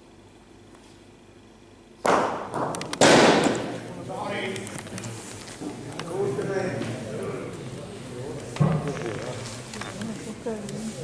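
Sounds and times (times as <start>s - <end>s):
bocce balls cracking together: 2.0s - 3.9s.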